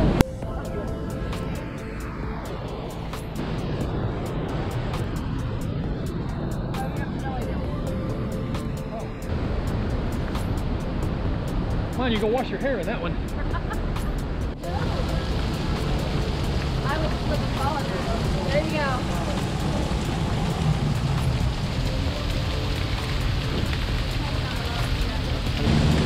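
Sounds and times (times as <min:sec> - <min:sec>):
background music: 0:00.0 - 0:26.0
waterfall rushing: 0:00.0 - 0:26.0.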